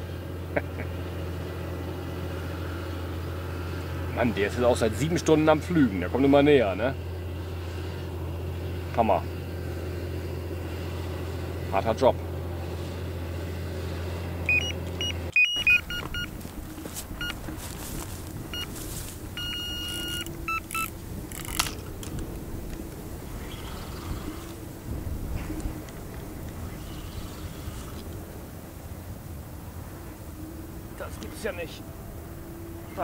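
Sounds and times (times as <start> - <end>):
tractor engine running: 0.0 - 33.0
electronic bite alarm beeping: 14.5 - 16.4, 18.5 - 18.8, 19.4 - 20.9.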